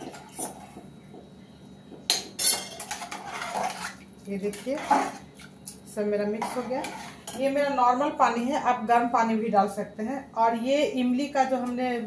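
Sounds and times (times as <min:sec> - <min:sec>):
spoon scraping metal pot: 0:02.4 - 0:05.2, 0:06.4 - 0:07.6.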